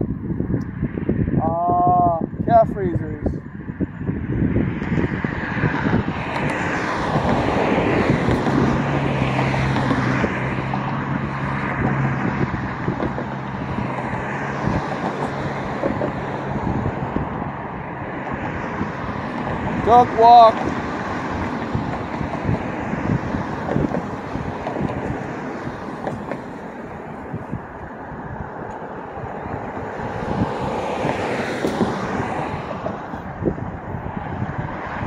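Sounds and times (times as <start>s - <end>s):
low engine hum: 3.3s - 35.0s
vehicle passing: 3.4s - 35.0s.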